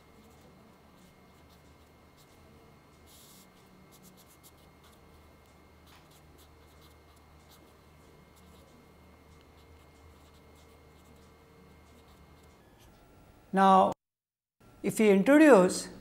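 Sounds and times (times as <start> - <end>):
marker pen writing on paper: 0.2 - 2.4, 3.0 - 5.2, 5.8 - 13.0.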